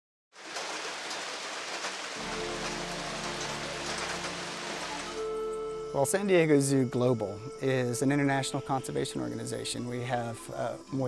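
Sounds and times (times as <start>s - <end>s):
rain falling: 0.3s - 6.0s
sustained music chords: 2.2s - 9.4s.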